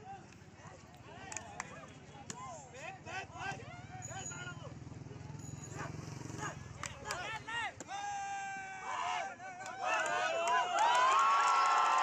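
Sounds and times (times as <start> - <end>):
people calling and shouting: 0.0 - 10.8.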